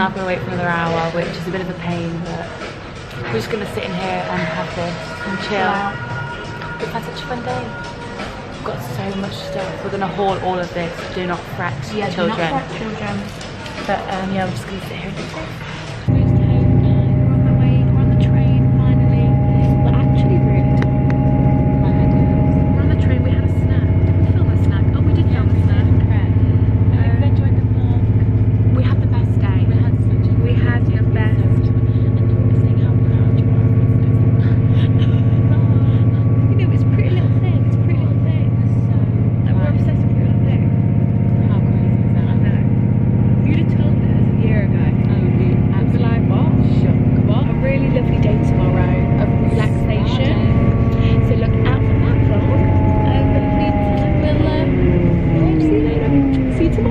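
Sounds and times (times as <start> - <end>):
faint voices: 0.0 - 56.9
train running inside carriage: 0.0 - 56.9.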